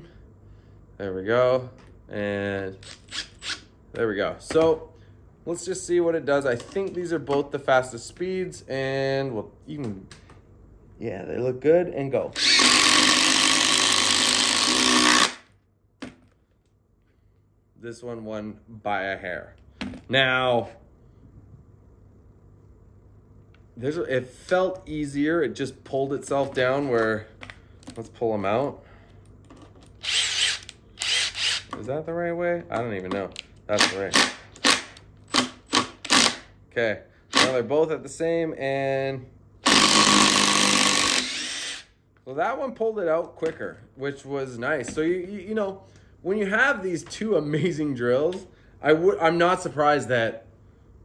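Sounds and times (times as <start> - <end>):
screws driven into wood: 12.4 - 15.4, 30.0 - 31.7, 33.8 - 36.5, 37.3 - 37.6, 39.6 - 41.9
impact drivers backing out screws: 33.8 - 36.4.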